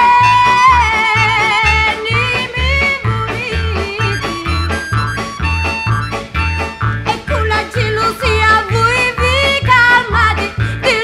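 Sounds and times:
held wavering lead melody: 0.0s - 10.4s
steady two-note bass: 0.0s - 11.0s.

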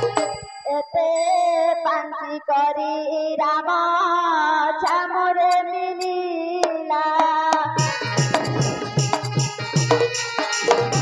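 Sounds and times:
drums steady beat: 0.0s - 0.6s, 7.2s - 11.0s.

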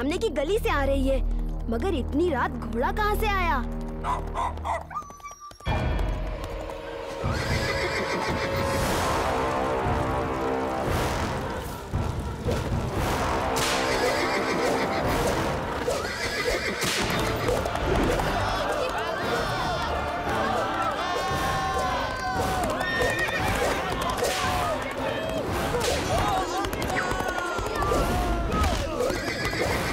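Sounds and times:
dramatic background music: 0.0s - 29.9s
horse hoofbeats galloping: 1.2s - 13.0s, 13.8s - 29.9s
horse whinnying: 7.2s - 8.6s, 13.9s - 15.1s, 15.8s - 17.6s, 22.8s - 23.8s, 28.8s - 29.9s.

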